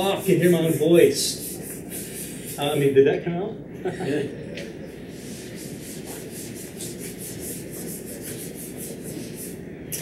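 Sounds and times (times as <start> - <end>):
eraser wiping whiteboard: 0.0 - 2.8, 5.0 - 10.0.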